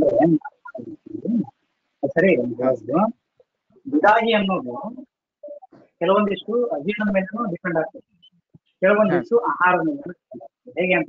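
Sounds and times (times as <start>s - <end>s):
man speaking: 0.0s - 3.1s, 3.9s - 8.2s, 8.8s - 11.0s.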